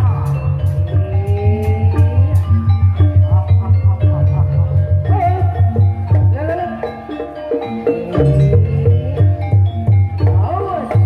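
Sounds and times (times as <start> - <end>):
deep drum beats: 0.0 - 11.0
struck metal percussion melody: 0.0 - 11.0.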